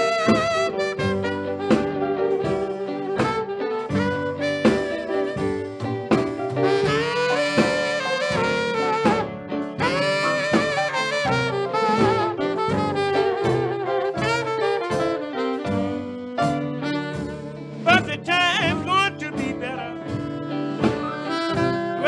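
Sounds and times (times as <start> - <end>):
blues band backing: 0.0 - 22.0
horn solo with vibrato: 0.0 - 22.0.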